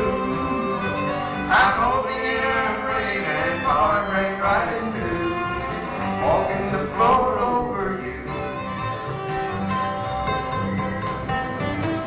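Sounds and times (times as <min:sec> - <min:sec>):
bluegrass band playing: 0:00.0 - 0:12.0
fiddle: 0:00.0 - 0:12.0
flatpicked lead guitar: 0:00.0 - 0:12.0
upright bass: 0:00.0 - 0:12.0.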